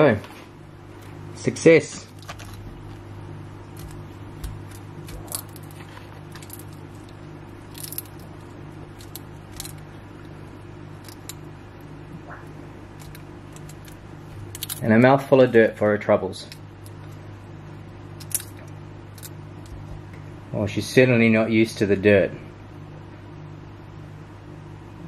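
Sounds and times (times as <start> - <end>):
lizard crunching crayfish shell: 2.1 - 11.6, 12.3 - 14.9, 18.2 - 19.9.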